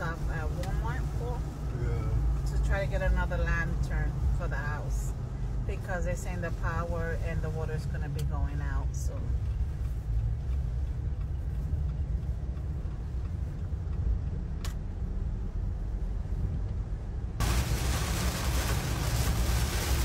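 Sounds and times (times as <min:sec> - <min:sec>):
car road and engine rumble: 0:00.0 - 0:20.0
rain hissing on car: 0:17.4 - 0:20.0.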